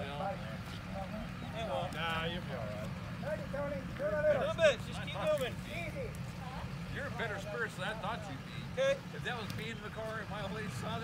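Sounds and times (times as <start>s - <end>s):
men talking and calling out: 0.0s - 11.0s.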